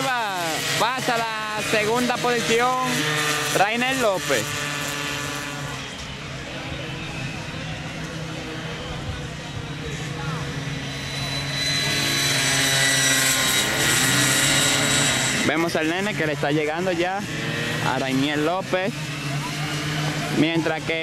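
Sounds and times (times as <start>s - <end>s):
racing motorcycles buzzing: 0.0s - 21.0s.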